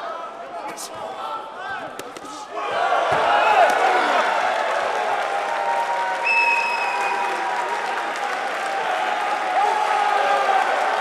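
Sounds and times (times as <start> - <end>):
crowd applauding and cheering: 2.6 - 11.0
shrill whistle: 6.2 - 7.4.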